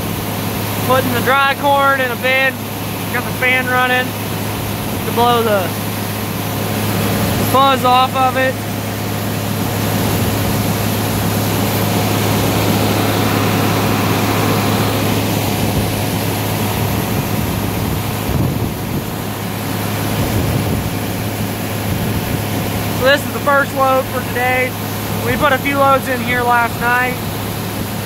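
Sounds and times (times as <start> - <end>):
corn rushing out of hopper: 0.0 - 28.0
grain auger and fan drone: 0.0 - 28.0.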